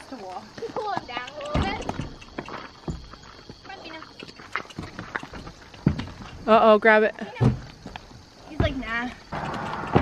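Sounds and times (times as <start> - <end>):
horse hooves on gravel: 0.0 - 10.0
hooves knocking on trailer ramp: 0.2 - 10.0.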